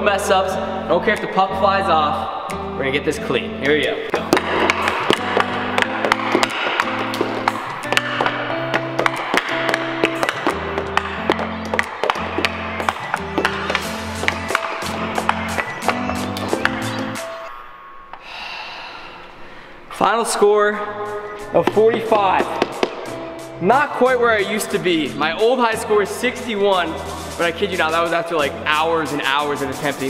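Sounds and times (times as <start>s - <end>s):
background music with bass line: 0.0s - 17.4s, 21.0s - 30.0s
hockey stick and puck clacking: 4.1s - 17.3s, 21.6s - 23.2s.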